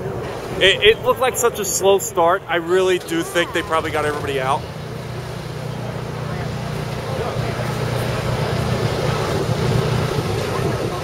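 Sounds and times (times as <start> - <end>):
faint voices: 0.0 - 11.0
vehicle engine rumbling: 0.0 - 11.0.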